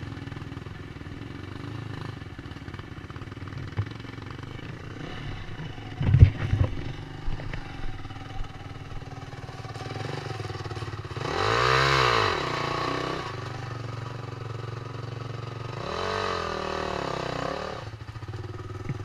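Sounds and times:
dirt bike engine revving: 3.1s - 14.2s, 14.9s - 19.0s.

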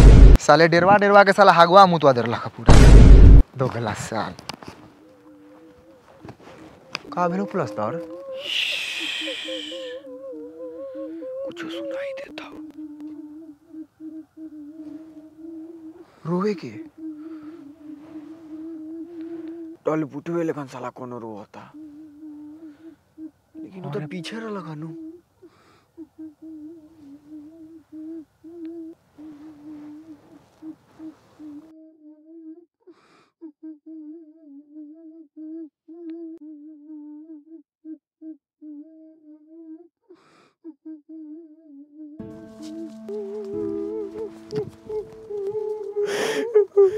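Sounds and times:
person humming a wavering note: 5.0s - 19.8s, 21.8s - 24.2s, 24.9s - 25.2s, 26.0s - 32.7s, 33.4s - 39.9s, 40.7s - 46.9s
sharp breath in: 8.4s - 10.0s, 46.0s - 46.9s.

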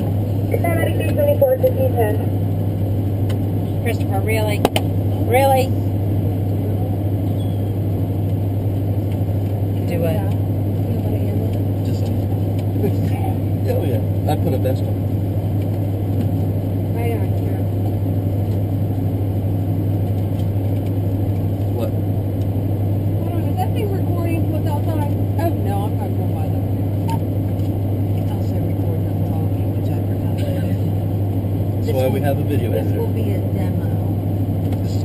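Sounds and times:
vehicle engine idling: 0.0s - 35.0s.

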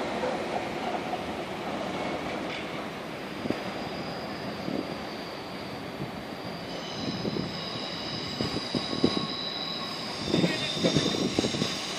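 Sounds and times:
train low rumble: 0.0s - 11.9s
steady high-pitched tones: 3.3s - 11.9s.

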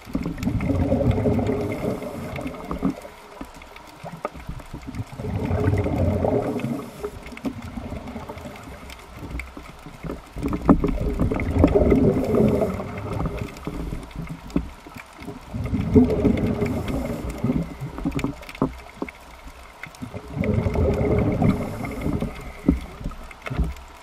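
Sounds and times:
underwater exhaust bubbles gurgling: 0.0s - 24.0s.

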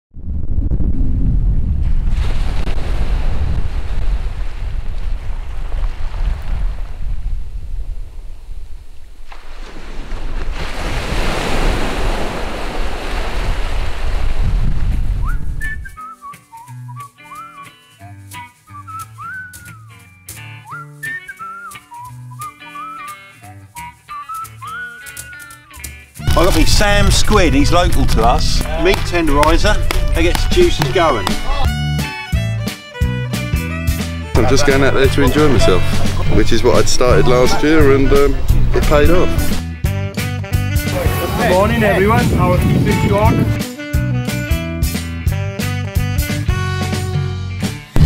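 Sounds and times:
waves on pebble beach: 9.3s - 15.0s
whistled melody over plucked beat: 15.2s - 27.0s, 29.4s - 41.1s, 42.7s - 48.0s.

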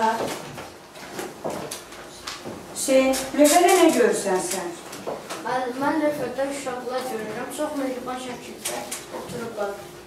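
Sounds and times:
person speaking: 2.9s - 10.0s.

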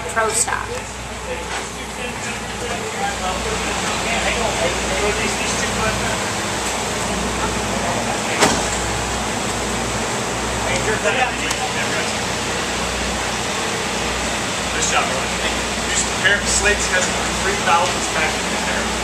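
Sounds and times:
machinery rumble and hiss: 0.0s - 19.0s.

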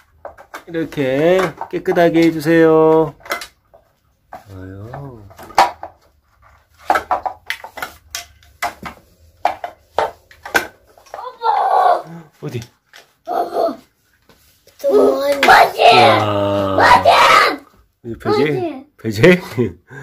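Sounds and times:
plastic toy pieces clattering: 0.2s - 11.4s
child's vocal sounds: 11.2s - 12.3s, 13.3s - 13.9s, 14.8s - 17.7s.

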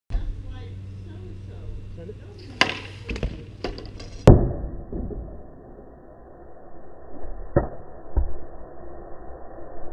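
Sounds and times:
arrow striking target: 2.4s - 5.8s.

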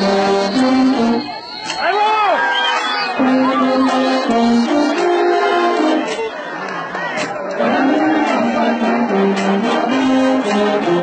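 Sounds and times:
brass band playing: 0.0s - 1.8s, 3.1s - 6.5s, 7.6s - 11.0s
voices: 0.4s - 10.9s.

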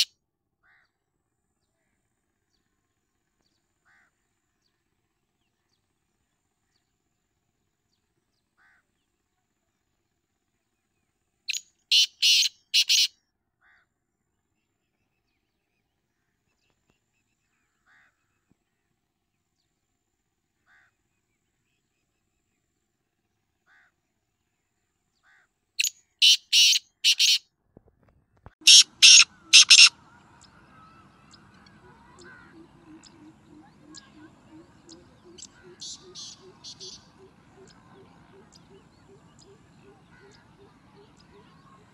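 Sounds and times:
bird calling harshly: 11.9s - 13.1s, 25.8s - 27.4s, 28.6s - 30.0s, 35.3s - 37.2s.

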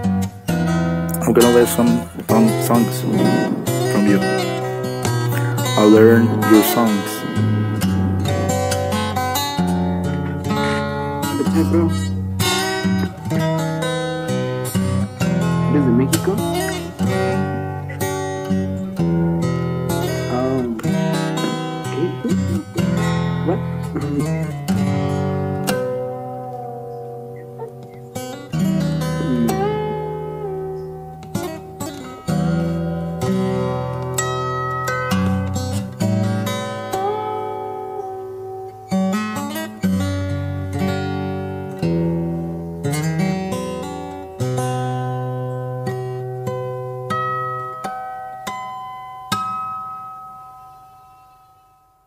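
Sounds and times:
acoustic guitar fingerstyle: 0.0s - 51.4s.

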